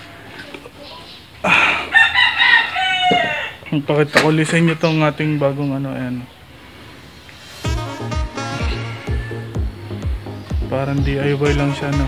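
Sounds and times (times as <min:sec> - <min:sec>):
rooster crowing: 0:01.5 - 0:03.7, 0:07.8 - 0:09.8.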